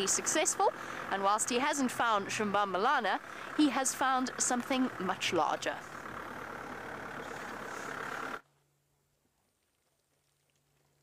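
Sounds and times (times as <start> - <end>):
vehicle engine road and wind noise: 0.0 - 8.4.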